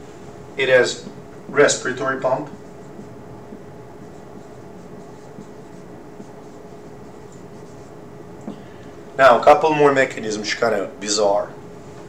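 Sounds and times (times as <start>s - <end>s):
low room hum: 0.0s - 12.0s
marker scratching on whiteboard: 1.0s - 8.0s.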